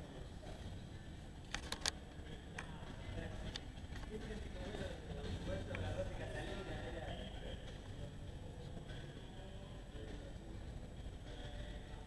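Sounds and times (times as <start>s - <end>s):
faint indistinct voices: 0.0s - 12.0s
low room noise rumble: 0.0s - 12.0s.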